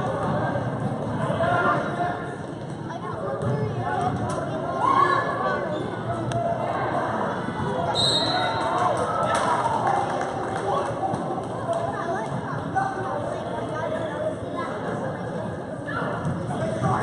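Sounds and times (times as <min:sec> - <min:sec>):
chatter of spectators: 0:00.0 - 0:17.0.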